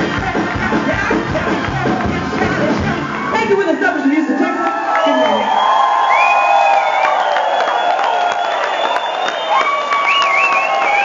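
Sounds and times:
audience cheering and whooping: 0:00.0 - 0:11.0.

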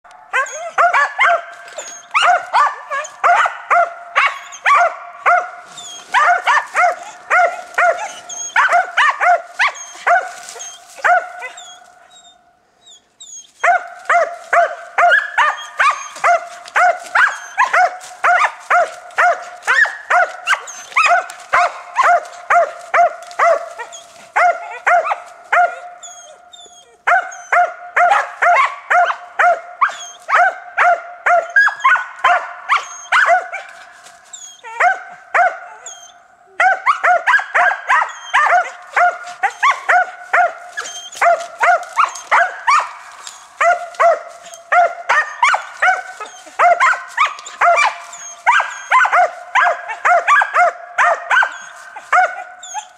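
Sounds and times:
hounds barking: 0:00.1 - 0:12.4, 0:13.6 - 0:52.9.

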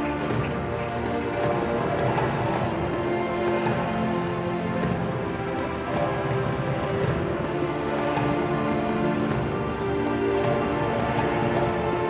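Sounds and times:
arena music with long held notes: 0:00.0 - 0:12.0.

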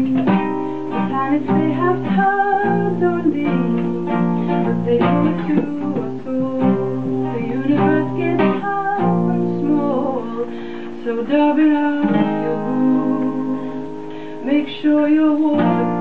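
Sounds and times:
acoustic guitar strumming chords: 0:00.0 - 0:16.0.

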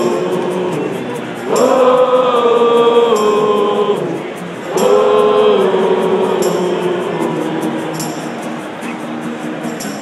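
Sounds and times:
acoustic band playing: 0:00.0 - 0:10.0
crowd singing in unison: 0:00.0 - 0:10.0.

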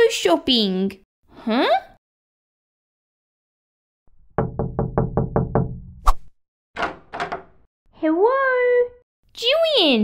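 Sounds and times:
knocking on a door: 0:04.3 - 0:06.0, 0:06.8 - 0:07.6.

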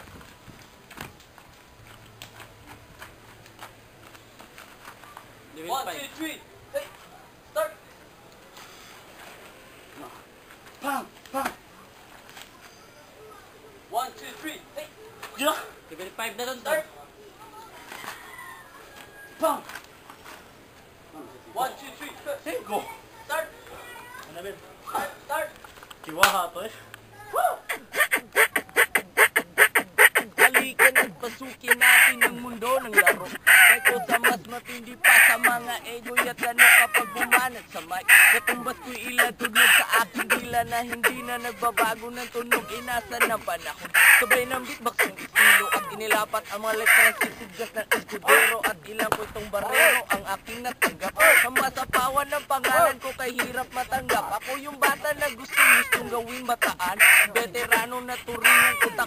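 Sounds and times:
person beatboxing: 0:27.7 - 0:59.0.

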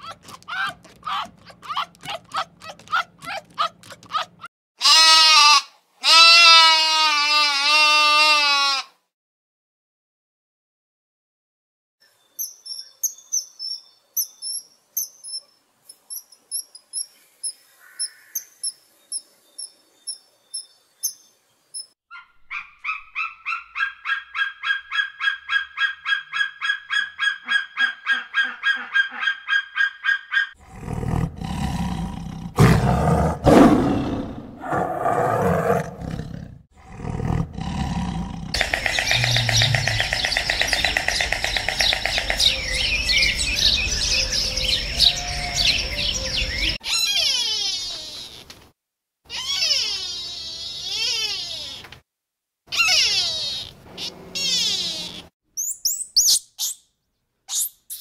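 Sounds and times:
fast even animal calls: 0:00.0 - 0:05.1, 0:38.6 - 0:43.3, 0:46.6 - 0:48.4, 0:49.3 - 0:51.8, 0:52.7 - 0:55.3
loud harsh animal call: 0:04.8 - 0:08.9, 0:37.7 - 0:48.5, 0:49.3 - 0:51.9, 0:52.7 - 0:55.3
chorus of bird calls: 0:38.6 - 0:48.5.

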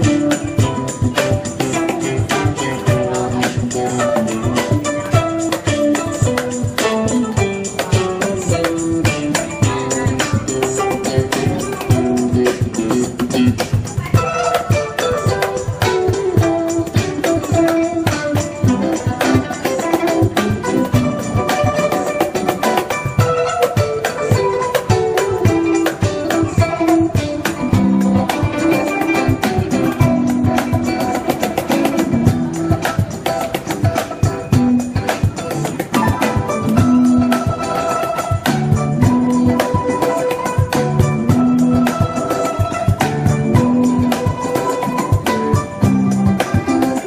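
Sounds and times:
cajon beat: 0:00.0 - 0:47.0
electric guitar: 0:00.0 - 0:47.0
plucked zither melody: 0:00.0 - 0:47.0.

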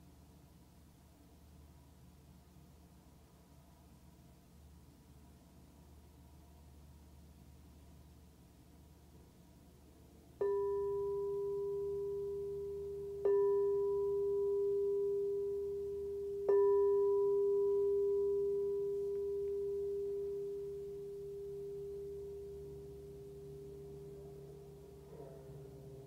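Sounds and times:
singing bowl ringing: 0:10.4 - 0:26.0.

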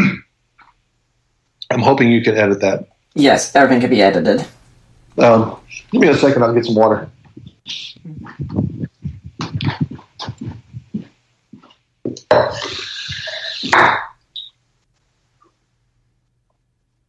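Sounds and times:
man coughing: 0:00.0 - 0:00.3.

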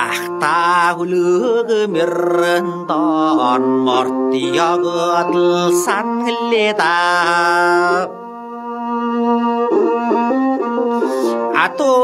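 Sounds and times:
man singing folk song: 0:00.0 - 0:08.2, 0:11.1 - 0:12.0
instrumental accompaniment: 0:00.0 - 0:12.0.

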